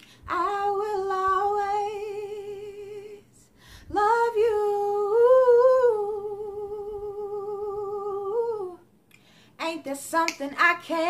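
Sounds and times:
woman singing a cappella: 0.0s - 9.0s, 9.6s - 11.0s.

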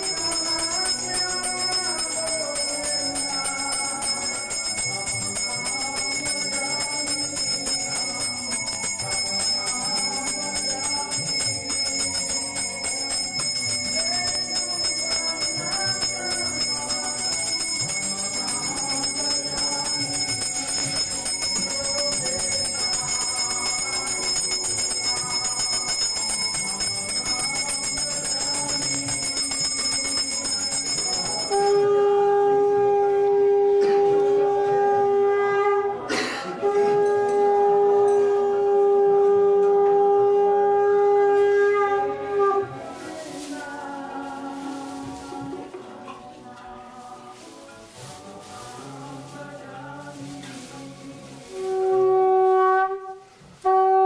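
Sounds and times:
bell ringing: 0.0s - 32.0s
music: 0.0s - 54.0s
conch shell blast: 51.5s - 54.0s.

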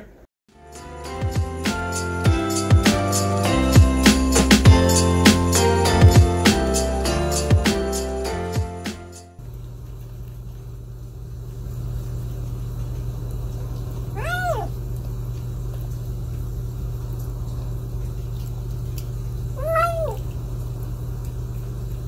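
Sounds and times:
kitten meowing: 14.1s - 14.8s, 19.6s - 20.2s.

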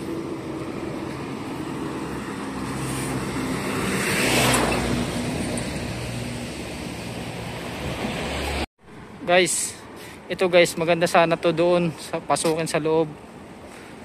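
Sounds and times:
vehicle passing close by: 0.0s - 8.7s
background traffic: 0.0s - 14.0s.

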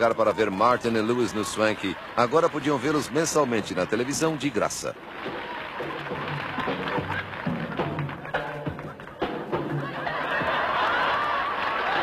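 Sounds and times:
music: 5.0s - 12.0s.

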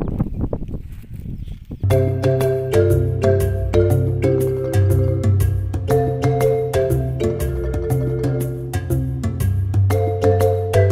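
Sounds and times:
marimba-like percussion music: 1.9s - 10.9s.

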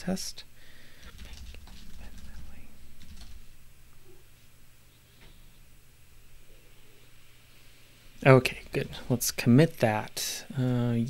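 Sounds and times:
computer keyboard typing: 1.0s - 3.5s.

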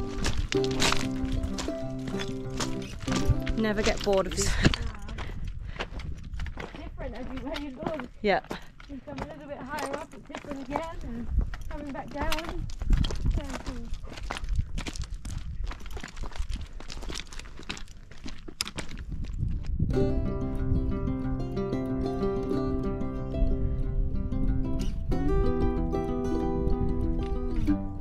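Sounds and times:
plucked-string background music: 0.0s - 4.5s, 19.9s - 28.0s
boots crunching on stones: 0.0s - 19.7s.

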